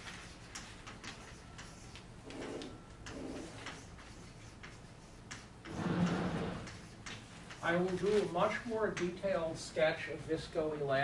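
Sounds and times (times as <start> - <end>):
chalk writing on blackboard: 0.0 - 5.9, 6.6 - 9.1.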